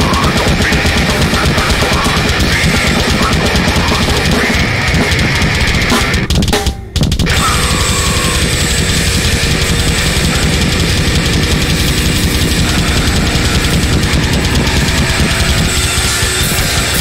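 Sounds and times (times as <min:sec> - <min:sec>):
double bass drum kicks: 0:00.0 - 0:17.0
metal band playing: 0:00.0 - 0:17.0.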